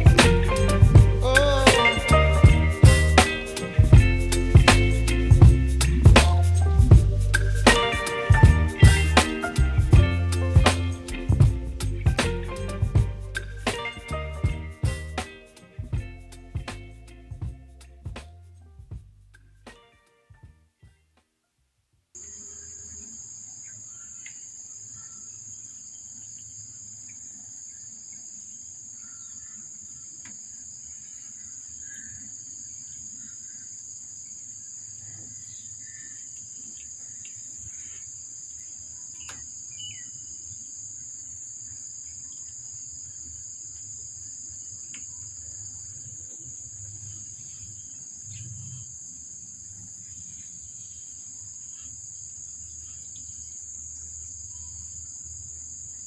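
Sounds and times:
high-pitched insect drone: 0:00.0 - 0:06.0, 0:22.2 - 0:56.0.

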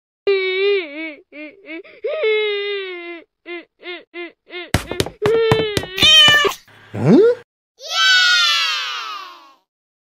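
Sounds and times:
high falling crying wail: 0:05.2 - 0:06.6, 0:07.8 - 0:09.6.

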